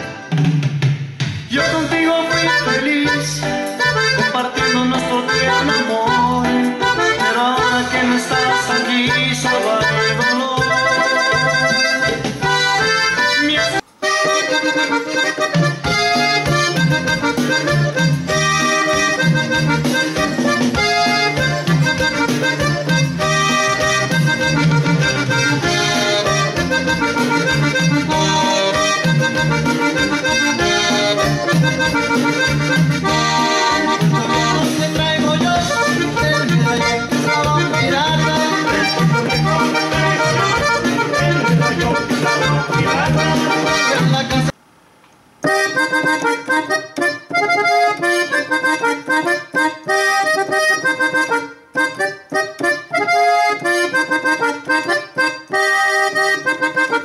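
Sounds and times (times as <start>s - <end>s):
accordion melody: 0.0s - 0.9s, 1.5s - 44.6s, 45.4s - 57.0s.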